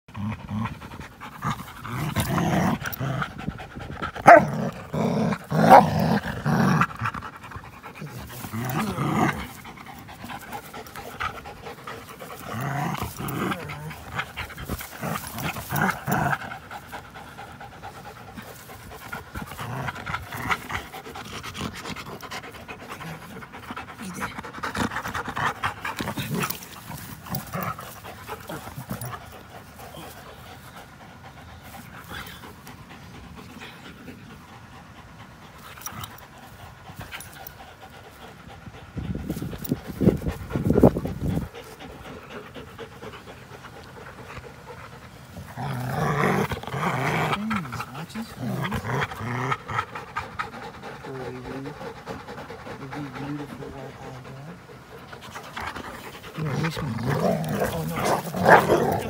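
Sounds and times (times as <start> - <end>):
dogs panting: 0.0 - 59.0.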